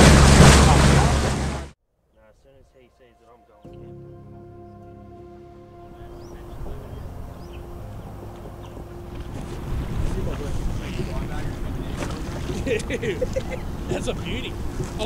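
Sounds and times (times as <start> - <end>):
wind rumbling on microphone: 5.9 - 15.0.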